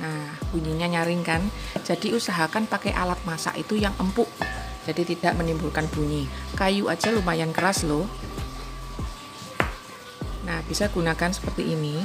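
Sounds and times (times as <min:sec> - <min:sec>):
soft background music: 0:00.0 - 0:12.0
spatula knocking: 0:04.4 - 0:04.8, 0:07.0 - 0:08.0, 0:09.6 - 0:09.8.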